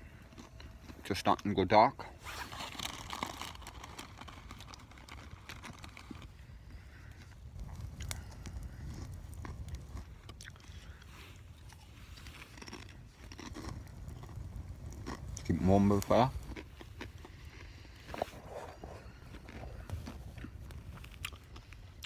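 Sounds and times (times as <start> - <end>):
person chewing crunchy chips: 0.0 - 1.5, 2.2 - 6.4, 8.0 - 22.0.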